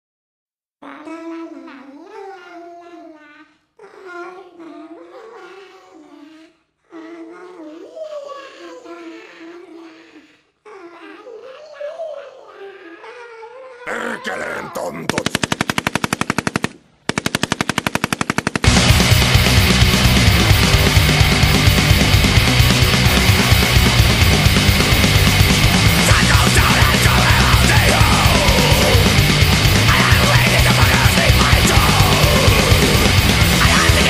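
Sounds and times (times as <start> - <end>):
automatic gunfire: 15.0 - 18.8
heavy metal music: 18.6 - 34.0.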